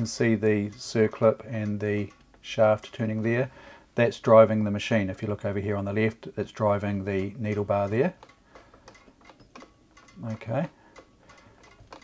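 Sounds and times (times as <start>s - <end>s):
sewing machine ticking and clicking: 0.0s - 3.5s, 6.8s - 12.0s.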